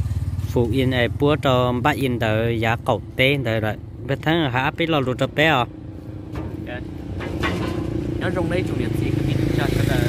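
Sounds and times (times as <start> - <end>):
motorcycle engine idling: 0.0 - 5.0
people talking: 0.5 - 5.7, 6.5 - 6.9, 8.2 - 10.0.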